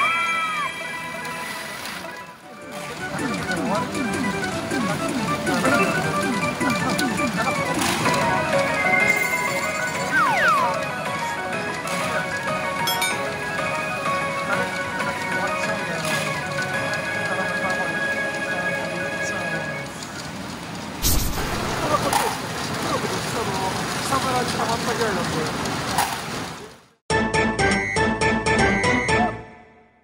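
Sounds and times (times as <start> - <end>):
pachinko machine music and effects: 2.0 - 20.4, 27.4 - 29.6.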